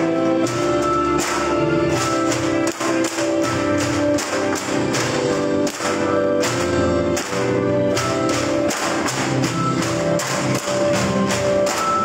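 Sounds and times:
melodic music: 0:00.0 - 0:12.0
bamboo poles knocking: 0:00.5 - 0:12.0.

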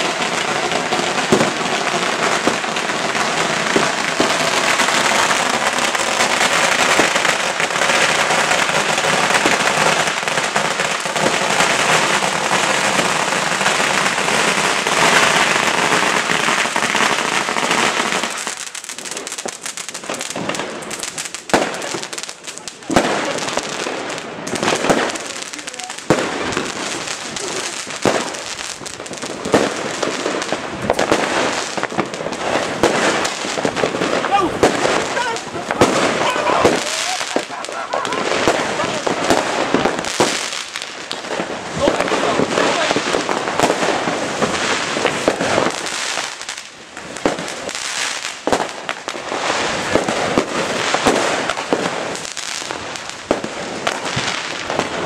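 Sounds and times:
fireworks and firecrackers banging: 0:00.0 - 0:55.0.

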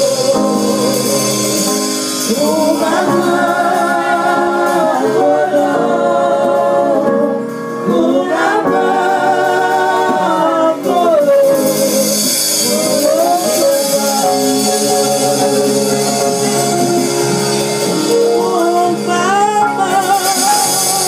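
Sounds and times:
women singing in harmony: 0:00.0 - 0:21.0.

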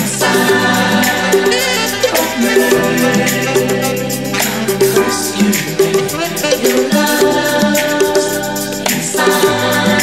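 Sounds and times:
funk music with group singing: 0:00.0 - 0:10.0.

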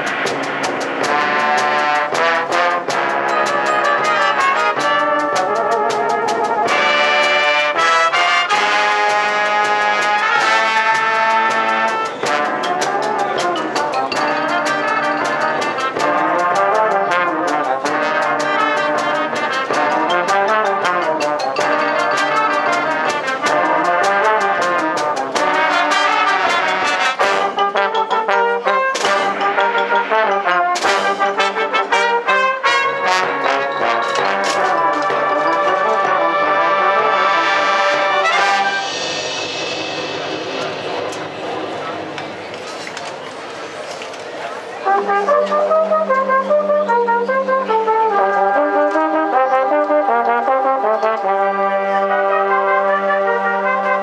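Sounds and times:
brass marching band playing: 0:00.0 - 0:54.0.

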